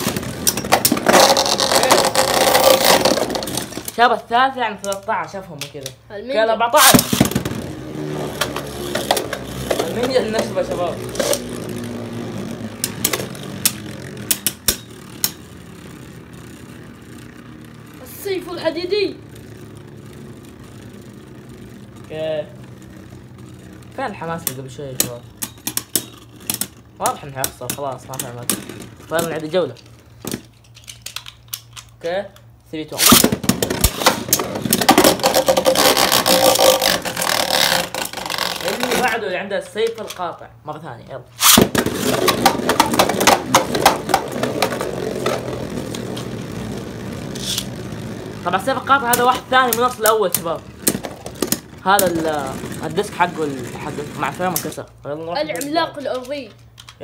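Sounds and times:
spinning tops whirring: 0:00.0 - 0:04.1, 0:06.8 - 0:30.2, 0:32.9 - 0:39.3, 0:41.4 - 0:56.4
sharp clicks of tops colliding: 0:33.0 - 0:39.2, 0:41.4 - 0:45.5
spinning tops clashing clacks: 0:41.4 - 0:46.4, 0:47.2 - 0:47.8.

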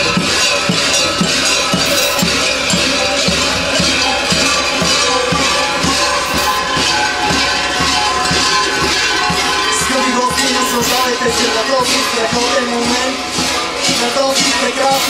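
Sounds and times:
large bells clanging: 0:00.0 - 0:15.0
low beat: 0:00.0 - 0:15.0.

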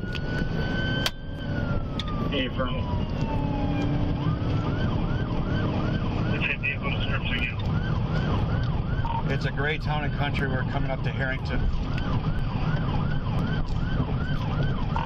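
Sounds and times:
engine and road noise: 0:00.0 - 0:15.0
police siren wailing and yelping: 0:00.0 - 0:15.0.

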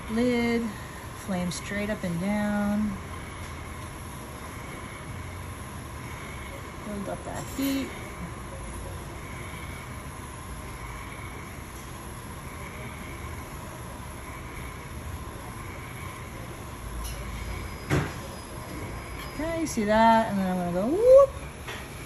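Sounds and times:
gas torch flame hissing: 0:00.0 - 0:22.0.

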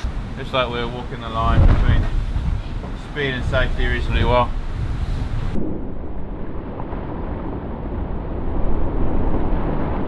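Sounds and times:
water rushing past hull: 0:00.0 - 0:10.0
wind: 0:00.0 - 0:10.0.

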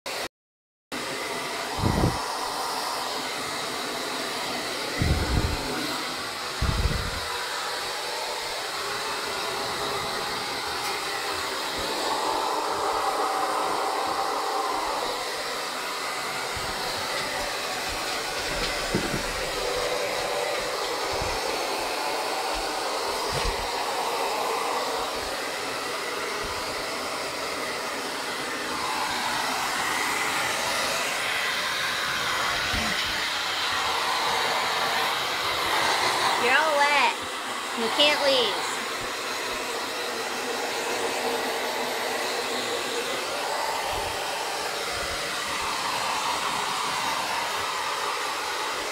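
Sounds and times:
hair dryer blowing: 0:00.1 - 0:00.3, 0:00.9 - 0:48.9.

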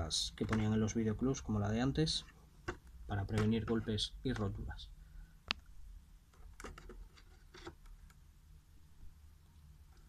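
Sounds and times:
plastic case clicks and rustles: 0:06.3 - 0:07.9.

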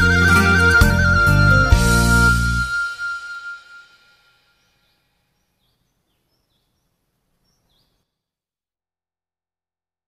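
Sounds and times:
backing music: 0:00.0 - 0:04.9
faint high chirps: 0:02.3 - 0:08.1.

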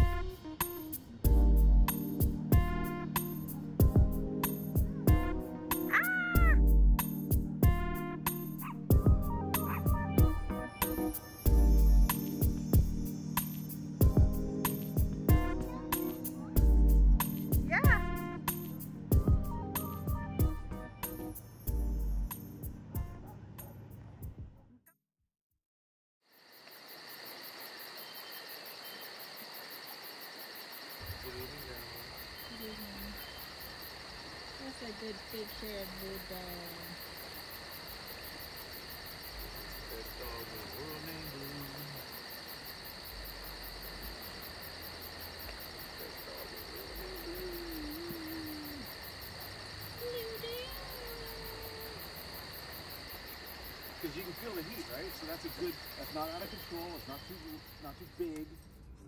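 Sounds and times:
music with drum beat: 0:00.0 - 0:23.3
insects chirring: 0:00.0 - 0:23.4, 0:26.3 - 0:59.0
faint voices: 0:45.8 - 0:49.0, 0:49.9 - 0:52.4.

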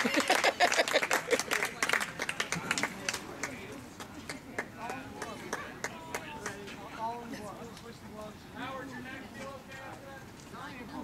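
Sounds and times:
spectators clapping: 0:00.0 - 0:06.6
faint voices talking: 0:00.9 - 0:11.0.

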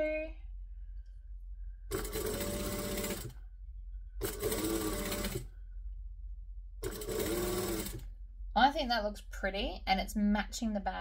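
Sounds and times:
industrial sewing machine stitching: 0:01.9 - 0:03.4, 0:04.2 - 0:05.5, 0:06.8 - 0:08.1.

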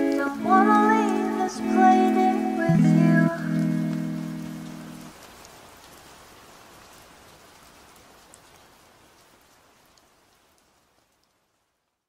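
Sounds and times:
lofi music chord: 0:00.0 - 0:05.1
rain hiss: 0:00.0 - 0:12.0.

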